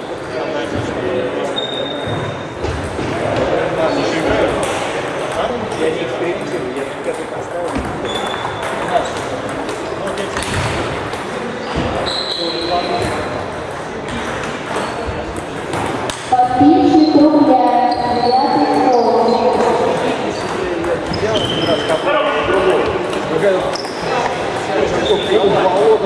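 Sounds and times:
crowd chattering in echoing hall: 0.0 - 26.0.

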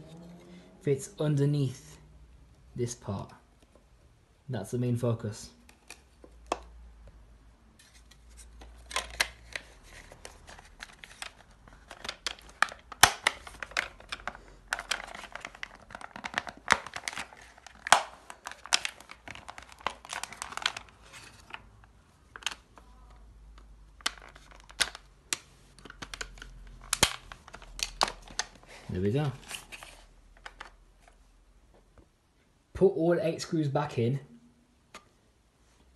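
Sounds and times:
plastic parts clicking and knocking: 8.3 - 21.7, 22.3 - 28.7, 29.4 - 31.2.

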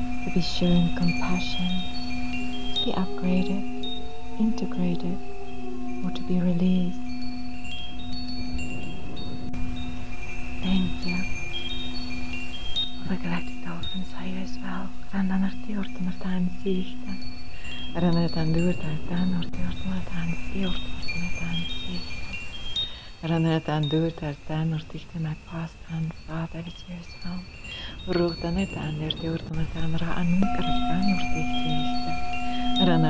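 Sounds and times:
soft low tone: 0.0 - 7.2, 8.4 - 9.9, 10.6 - 11.5, 13.0 - 22.4, 23.2 - 33.0
wind chimes ringing: 0.0 - 33.0
steady low drone: 28.0 - 33.0.

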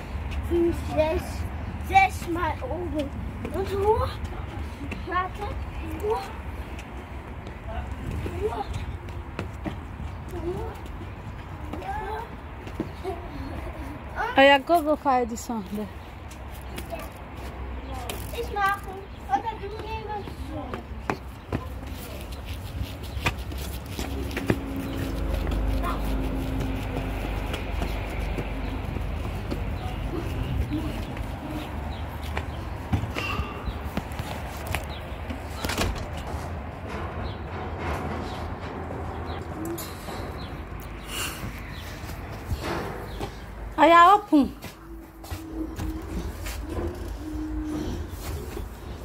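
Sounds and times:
children's voices: 0.2 - 6.9, 10.0 - 14.4, 16.7 - 22.3, 24.8 - 27.4.

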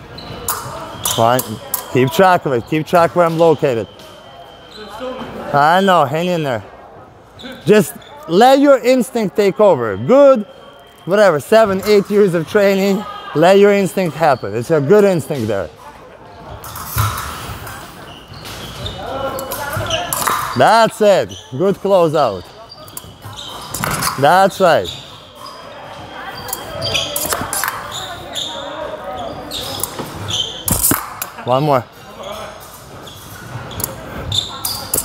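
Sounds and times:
voices in hall: 0.0 - 35.0.

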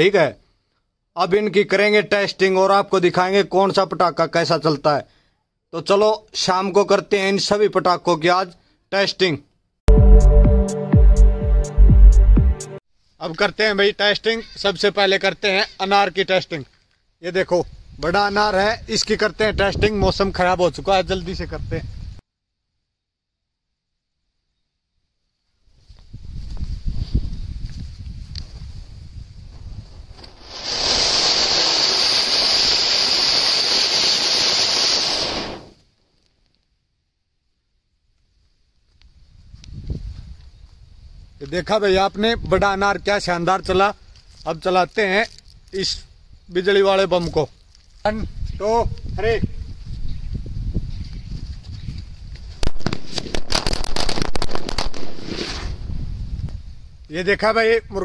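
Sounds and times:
firework fountain sputtering: 30.2 - 35.8
rushing hiss of spraying sparks: 30.2 - 35.8.

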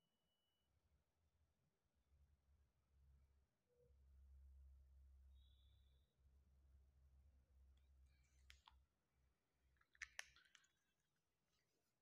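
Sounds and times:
whiteboard marker clicks: 9.9 - 10.7.

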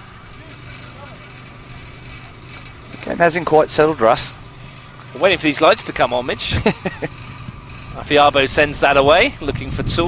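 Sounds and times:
distant voices calling: 0.0 - 9.8
low outdoor rumble: 0.0 - 10.0.

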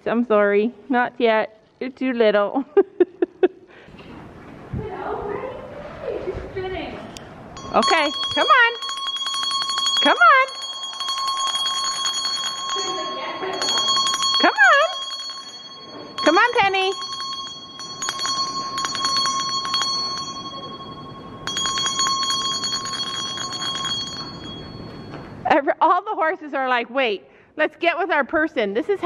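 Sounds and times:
shrill bell trilling: 7.6 - 25.5.

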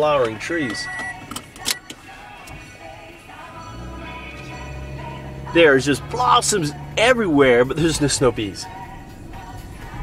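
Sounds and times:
car engine hum: 0.0 - 10.0
road noise: 0.0 - 10.0.

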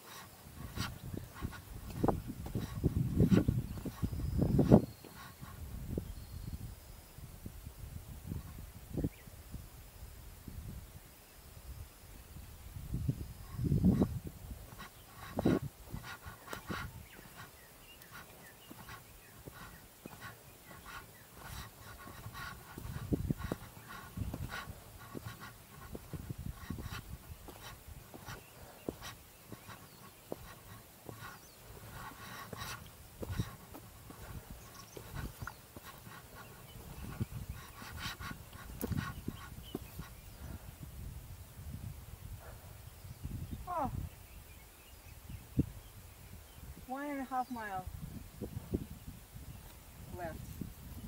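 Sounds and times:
footsteps on dirt trail: 0.0 - 5.6, 13.5 - 40.7
person panting: 14.7 - 39.6.

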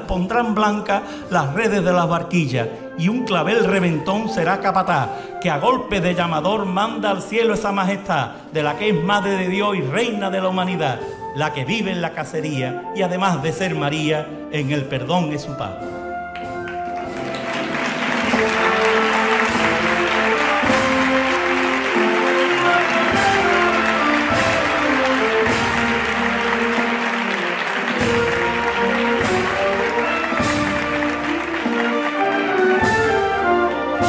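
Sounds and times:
band playing a march: 15.5 - 34.0
audience applause: 16.4 - 33.9.

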